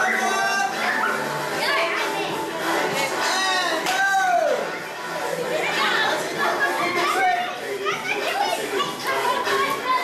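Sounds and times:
adult voices: 0.0s - 10.0s
children calling and chattering: 0.0s - 10.0s.

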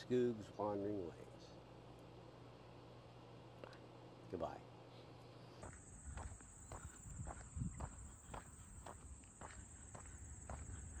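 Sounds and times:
low wind rumble: 5.8s - 11.0s.

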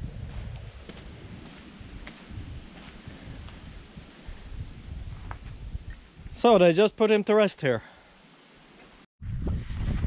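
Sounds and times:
wind buffeting microphone: 0.0s - 6.6s, 9.2s - 10.0s
faint hiss: 1.6s - 9.1s.

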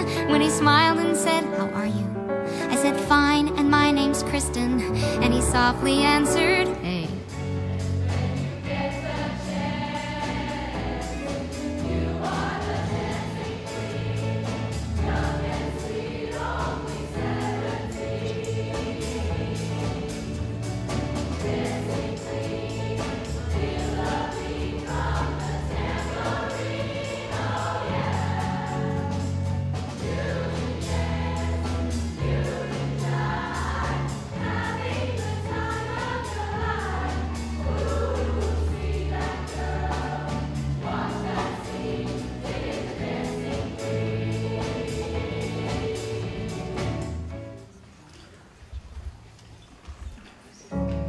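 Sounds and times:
choir singing long notes: 8.0s - 20.6s, 21.4s - 47.0s.

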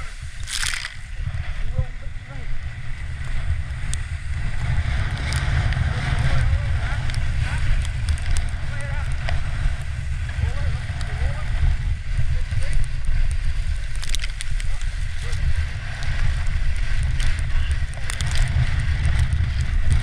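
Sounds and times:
sledge runners hissing on snow: 0.0s - 17.8s
wind rumble on microphone: 0.0s - 20.0s.

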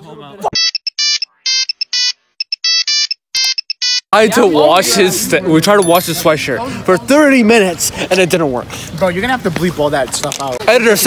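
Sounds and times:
electronic ringtone melody: 0.6s - 4.1s.

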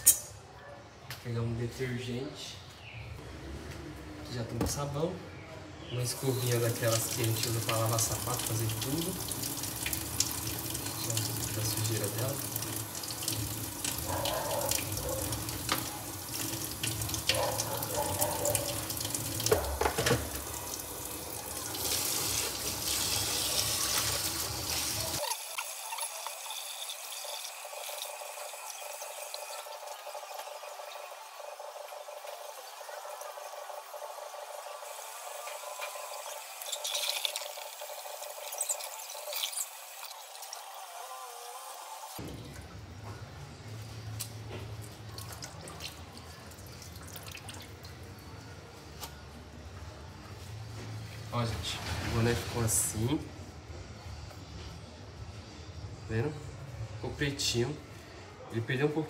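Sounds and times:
tap running into steel sink: 19.4s - 20.5s.

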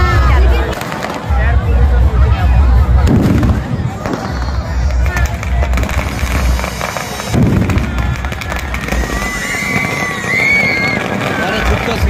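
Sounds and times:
firecrackers banging and crackling: 0.0s - 12.0s.

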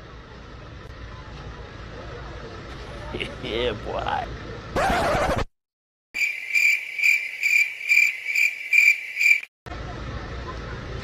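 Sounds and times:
cricket chirping: 6.2s - 9.5s.

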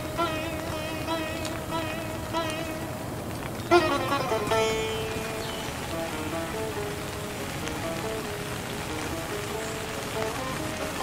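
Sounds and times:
plucked string instrument melody: 0.0s - 11.0s
rain falling: 0.0s - 11.0s.

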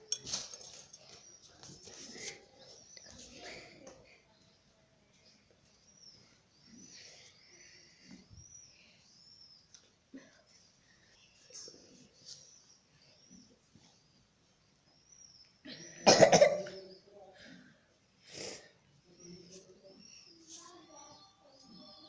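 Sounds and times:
person coughing: 16.0s - 16.8s.

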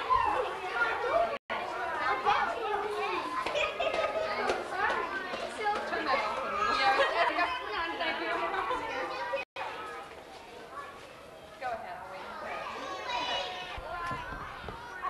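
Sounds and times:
hubbub of overlapping voices: 0.0s - 15.0s.

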